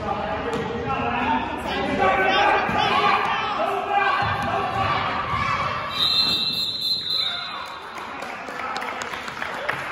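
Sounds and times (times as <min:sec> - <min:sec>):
court and crowd noise: 0:00.0 - 0:09.9
referee's whistle: 0:05.9 - 0:07.8.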